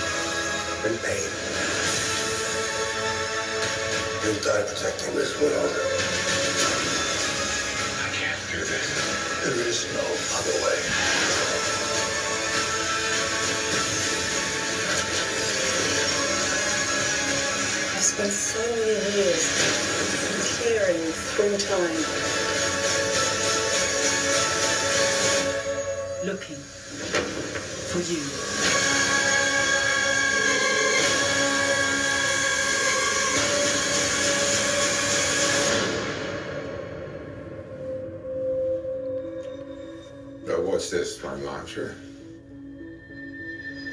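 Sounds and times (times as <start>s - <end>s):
music: 0.0s - 43.9s.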